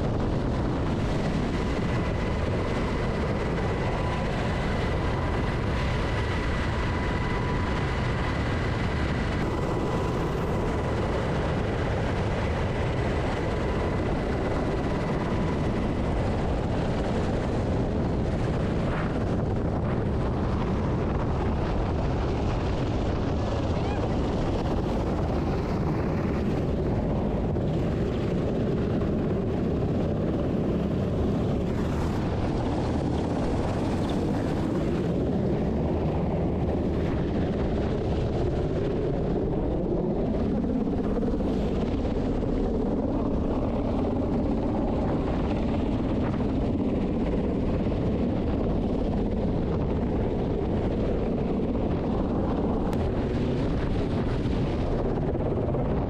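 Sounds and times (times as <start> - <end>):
helicopter rotor and engine roar: 0.0 - 56.0
wind buffeting microphone: 0.0 - 56.0.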